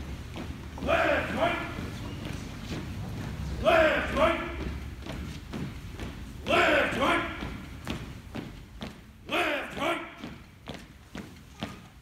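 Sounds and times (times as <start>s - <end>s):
marching footsteps on concrete: 0.0s - 12.0s
person shouting a drawn-out call: 0.8s - 1.8s, 3.6s - 4.6s, 6.5s - 7.4s, 9.3s - 10.2s.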